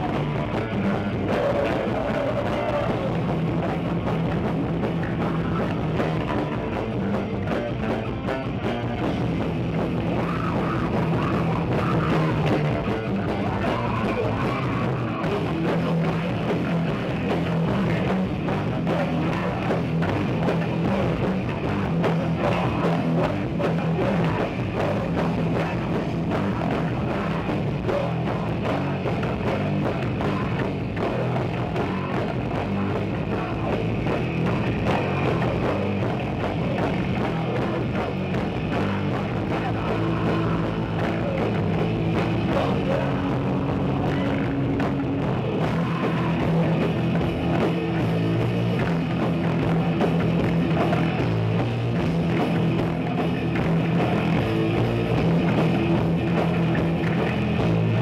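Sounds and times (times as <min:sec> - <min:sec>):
distorted electric guitars: 0:00.0 - 0:58.0
electric bass: 0:00.0 - 0:58.0
pounding drum kit: 0:00.0 - 0:58.0.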